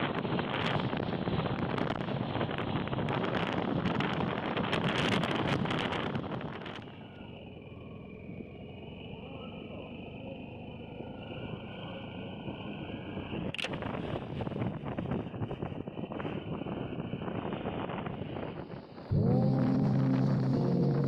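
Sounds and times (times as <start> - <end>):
wind buffeting microphone: 0.0 - 7.0, 12.4 - 21.0
vehicle rumble on road: 19.1 - 21.0.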